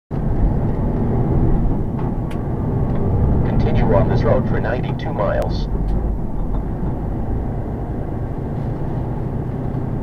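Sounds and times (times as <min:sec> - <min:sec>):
car driving road and engine rumble: 0:00.1 - 0:10.0.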